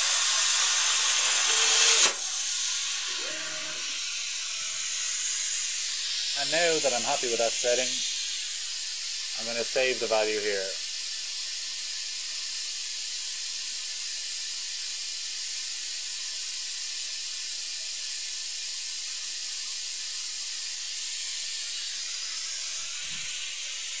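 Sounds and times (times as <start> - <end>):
steady high hiss: 0.0 - 12.2.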